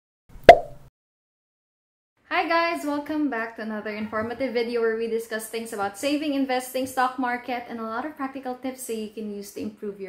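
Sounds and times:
short pop sound effect: 0.4 - 0.9.

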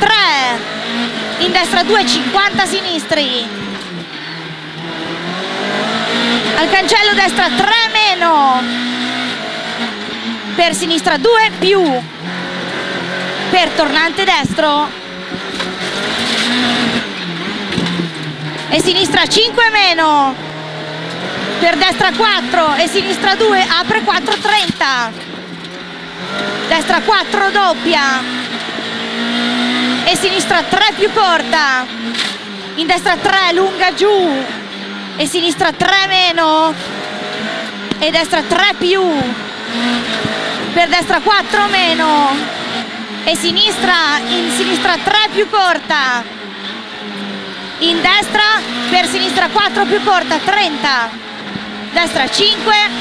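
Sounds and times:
car engine revving: 0.0 - 53.0.

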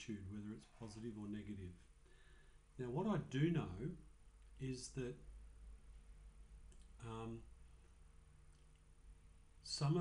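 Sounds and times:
low steady hum: 0.0 - 10.0
faint clicks: 6.7 - 7.0.

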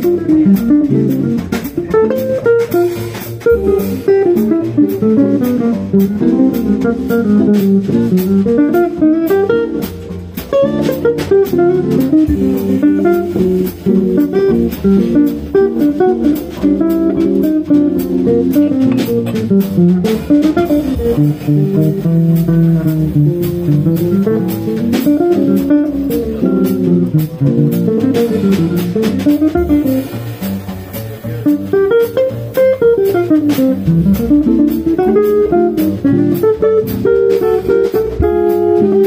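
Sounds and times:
drum and cymbal strokes: 0.0 - 39.0
guitars: 0.0 - 39.0
walking double bass: 0.0 - 39.0.

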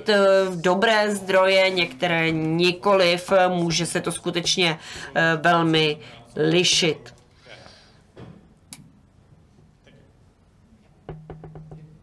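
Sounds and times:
microphone knocks: 11.1 - 12.0.

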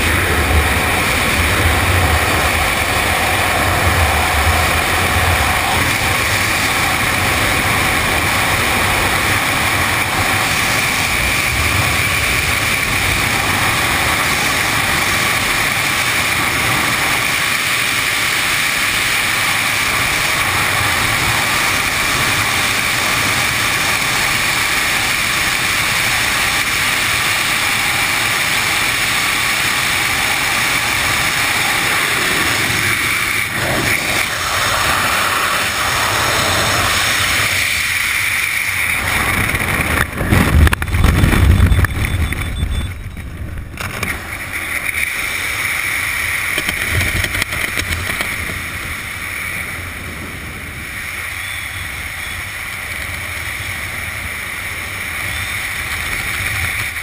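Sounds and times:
wind buffeting a microphone: 0.0 - 44.2.

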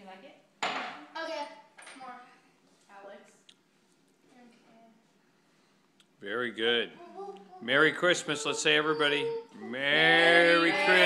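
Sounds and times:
voices: 7.0 - 11.0.

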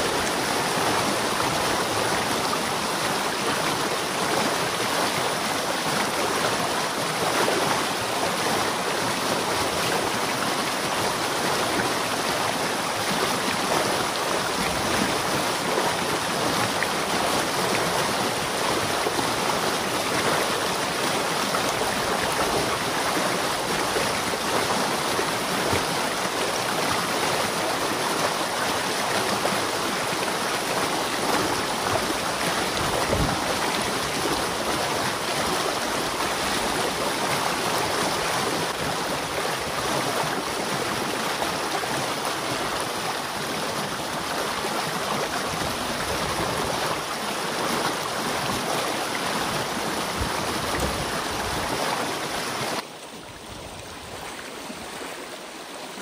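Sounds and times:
water rushing through dam breach: 0.0 - 56.0.

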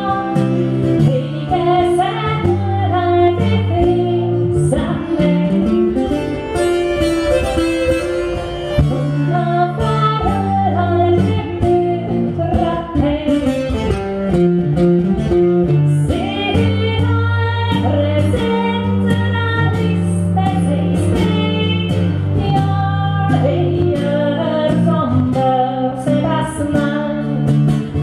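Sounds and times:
woman singing: 0.0 - 6.1, 8.8 - 14.0, 15.7 - 28.0
bowed and plucked string instruments: 0.0 - 28.0.

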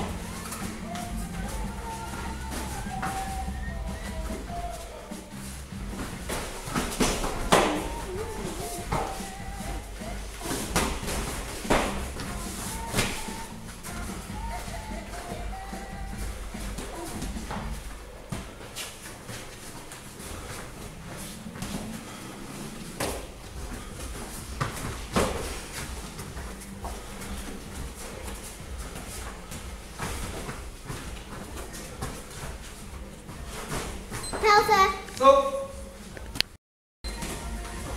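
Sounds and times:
background music: 0.0 - 18.2, 20.2 - 36.5, 37.1 - 37.9
gloved punches and kicks slapping: 5.8 - 13.5, 23.0 - 32.8.

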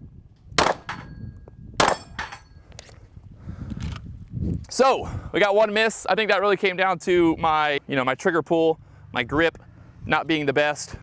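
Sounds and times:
pistol shots: 0.6 - 1.1, 1.8 - 2.3
steel targets ringing: 0.7 - 2.6.

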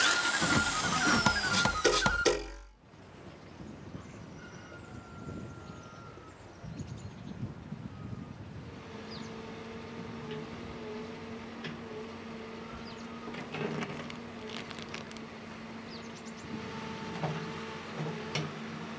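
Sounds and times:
faint outdoor background: 0.0 - 18.9.

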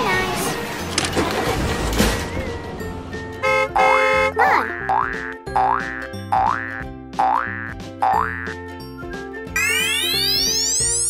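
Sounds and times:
background music: 0.0 - 11.0
horn-like honk: 3.4 - 4.5.

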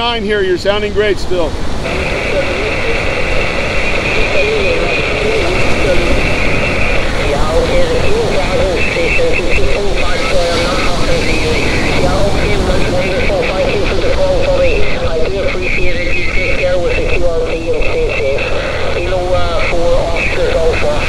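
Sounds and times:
radio band noise: 0.0 - 21.0
voice over radio speaker: 0.0 - 21.0.

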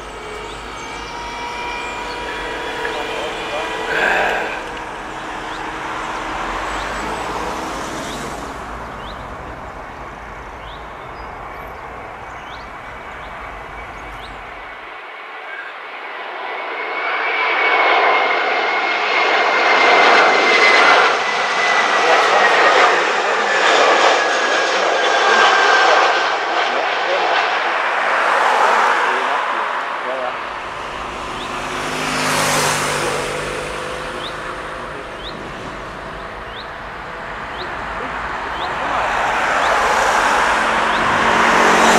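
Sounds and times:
jet airliner engines passing low: 0.0 - 41.9
thin falling jet whine: 0.0 - 41.9.

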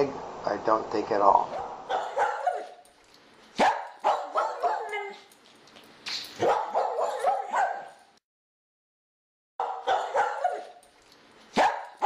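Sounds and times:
dog barking: 1.5 - 2.8, 3.6 - 5.3, 6.4 - 8.1, 9.6 - 10.8, 11.5 - 12.0.

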